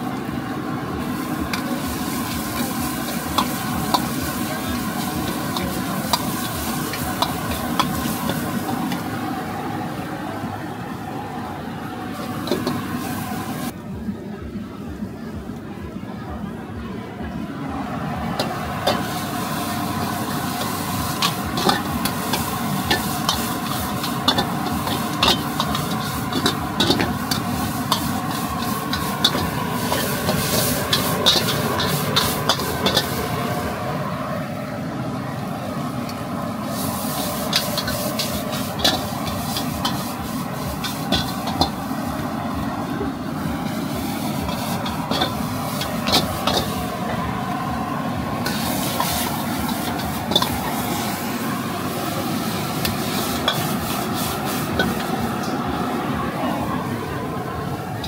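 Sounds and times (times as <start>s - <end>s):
noodles sizzling in a wok: 0.0s - 13.8s, 17.7s - 58.0s
metal ladle scraping a wok: 0.2s - 9.3s, 12.1s - 13.7s, 18.2s - 34.0s, 36.4s - 42.3s, 43.6s - 47.5s, 48.3s - 55.6s.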